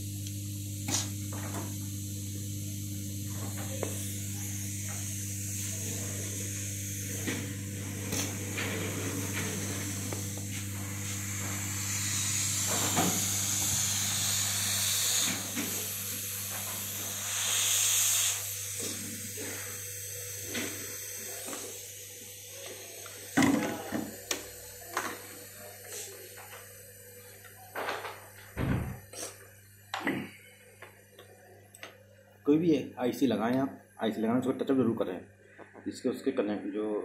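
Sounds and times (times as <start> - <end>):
hot air gun hissing: 0.8 - 26.4
low fan hum: 3.2 - 17.2.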